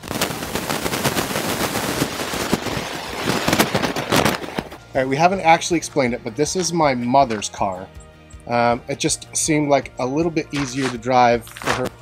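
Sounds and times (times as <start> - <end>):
crackling and popping recording: 0.0 - 8.8, 10.4 - 12.0.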